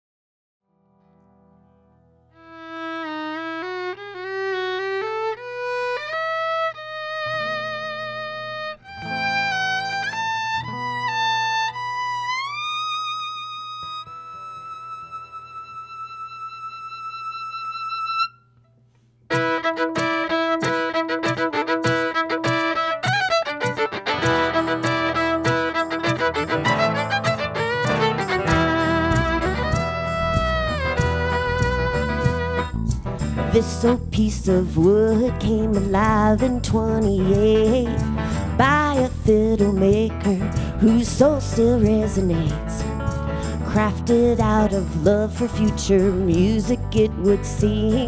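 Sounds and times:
acoustic band playing: 2.4s - 18.4s, 19.3s - 48.0s
fiddle playing with vibrato: 2.4s - 18.4s, 19.3s - 34.2s.

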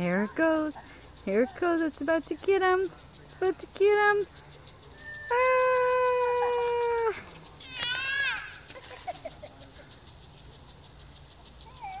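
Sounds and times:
impact lawn sprinkler ticking: 0.0s - 12.0s
person squealing: 4.9s - 9.0s.

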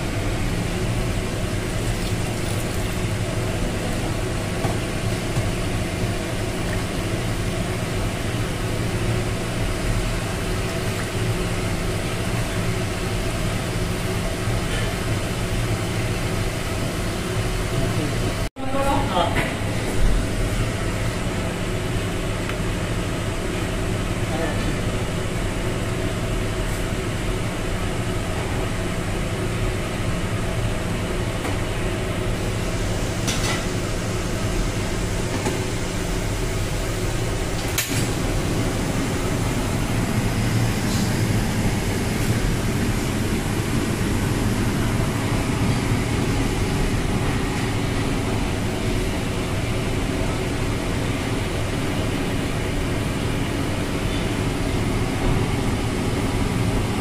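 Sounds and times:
steady machine hum with hiss: 0.0s - 57.0s.

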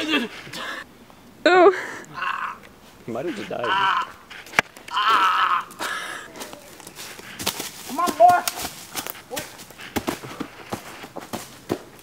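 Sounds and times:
person squealing: 2.1s - 2.6s, 3.3s - 4.2s, 4.9s - 5.8s
short scuffs: 6.4s - 11.9s.

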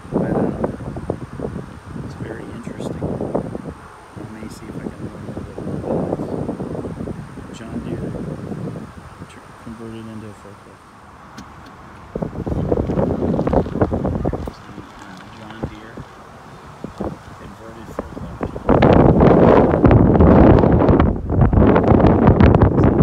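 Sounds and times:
wind on microphone: 0.0s - 23.0s
indistinct voices: 9.1s - 20.7s.

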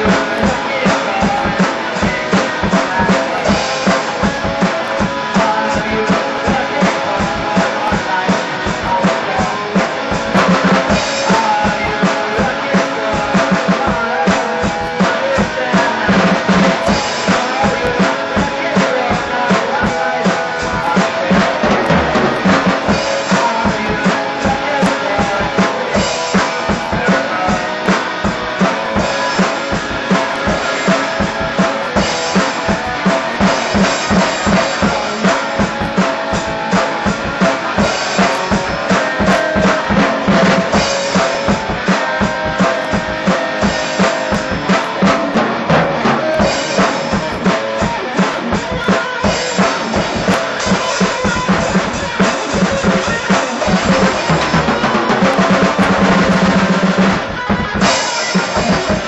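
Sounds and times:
drum kit playing fast beat: 0.0s - 59.0s
electric guitar: 0.0s - 59.0s.

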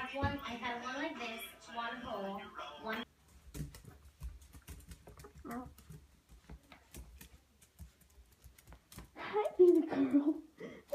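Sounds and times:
dog claws clicking on wood floor: 3.3s - 9.9s.

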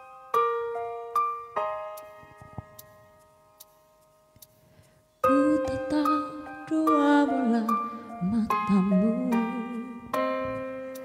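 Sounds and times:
electric piano chords: 0.0s - 11.0s
faint ticks: 3.6s - 5.0s.

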